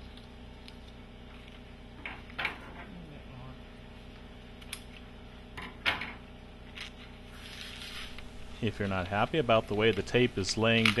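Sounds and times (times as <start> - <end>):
steady low hum: 0.0 - 11.0
scissors snipping tape: 10.8 - 11.0.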